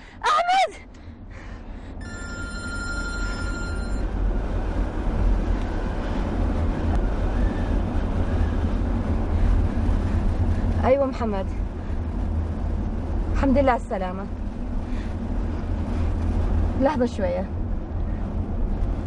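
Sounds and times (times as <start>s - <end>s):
road noise inside moving car: 0.0s - 19.0s
mobile phone ringing: 2.0s - 4.1s.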